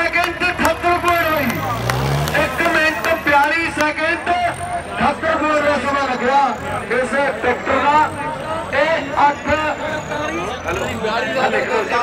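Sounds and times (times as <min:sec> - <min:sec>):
commentator talking fast: 0:00.0 - 0:12.0
tractor engines running: 0:00.0 - 0:12.0.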